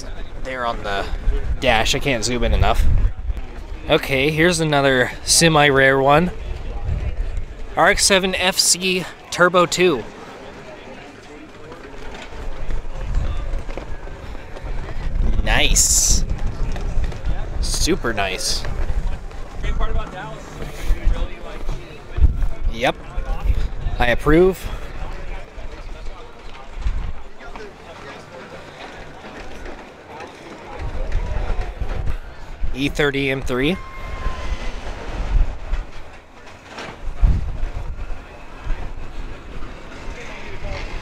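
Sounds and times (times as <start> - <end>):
wind buffeting microphone: 0.0 - 5.3, 6.2 - 7.8, 12.3 - 27.6, 30.7 - 41.0
people chattering: 0.0 - 41.0
faint background voices: 9.0 - 15.5, 16.2 - 32.8.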